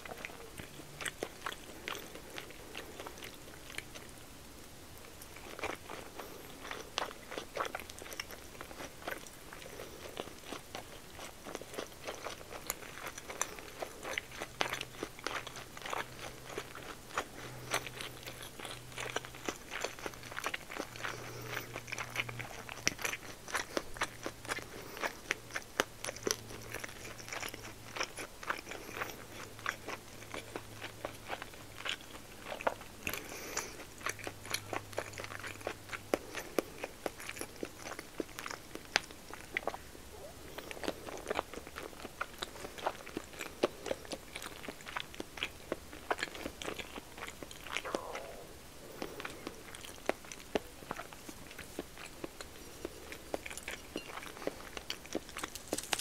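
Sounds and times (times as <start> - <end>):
close chewing with wet mouth clicks: 0.0 - 56.0.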